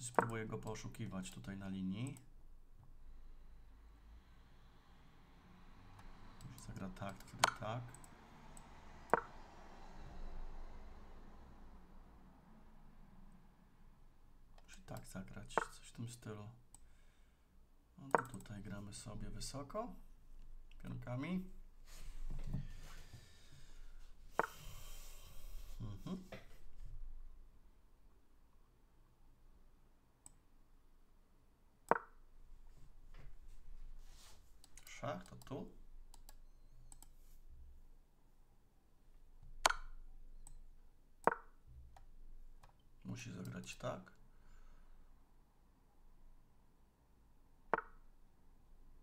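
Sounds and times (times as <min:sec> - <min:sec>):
chess move click: 0:00.0 - 0:00.7, 0:06.4 - 0:08.1, 0:09.1 - 0:09.4, 0:14.9 - 0:15.8, 0:18.1 - 0:18.6, 0:24.4 - 0:24.7, 0:39.6 - 0:40.6.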